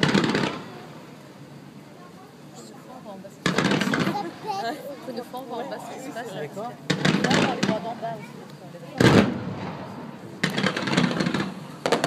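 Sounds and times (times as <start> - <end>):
firework shell bursts: 0.0 - 0.8, 3.4 - 4.2, 6.9 - 7.8, 9.0 - 12.0
crackling firework stars: 0.0 - 5.1, 6.8 - 12.0.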